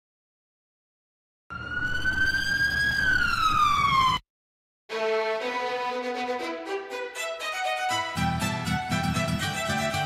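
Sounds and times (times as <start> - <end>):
siren wail: 1.5 - 4.2
violin music: 4.9 - 10.0.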